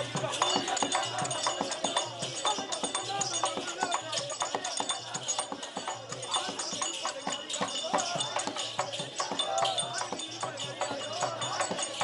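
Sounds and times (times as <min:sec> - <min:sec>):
small hand cymbals: 0:00.0 - 0:12.0.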